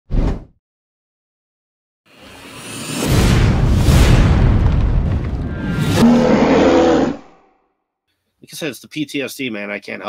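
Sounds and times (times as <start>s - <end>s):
deep boom with crashing rumble: 3.0s - 6.3s.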